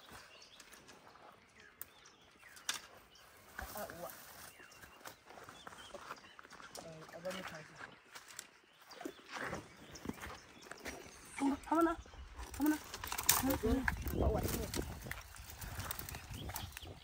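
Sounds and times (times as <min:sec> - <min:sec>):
men talking quietly: 0:06.6 - 0:08.0.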